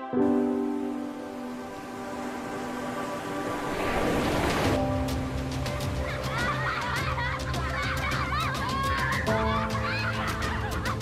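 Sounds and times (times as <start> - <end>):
background music with ticking beat: 4.9 - 11.0.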